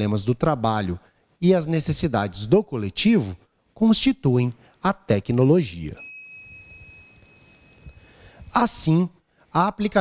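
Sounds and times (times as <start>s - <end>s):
high electronic chime: 6.0s - 8.3s.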